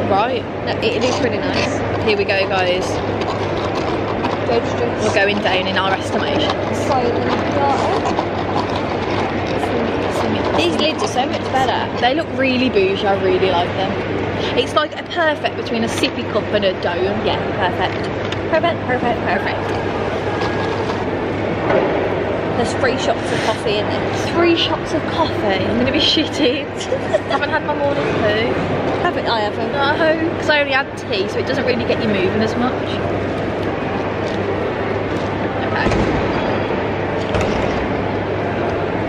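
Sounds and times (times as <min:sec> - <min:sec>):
faint voices: 0:00.0 - 0:21.6
loud rumbling noise: 0:00.0 - 0:39.0
low hum: 0:00.0 - 0:39.0.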